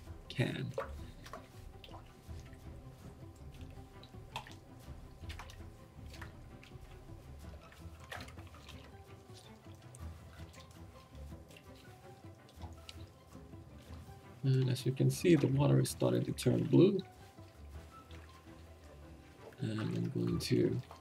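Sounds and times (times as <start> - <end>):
quiet background music: 0.0 - 21.0
water sloshing in a sink: 0.0 - 21.0.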